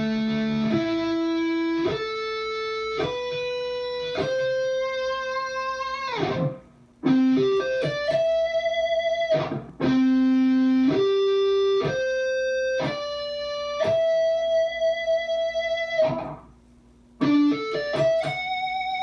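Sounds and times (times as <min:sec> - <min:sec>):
distorted electric guitar: 0:00.0 - 0:16.6, 0:17.2 - 0:19.0.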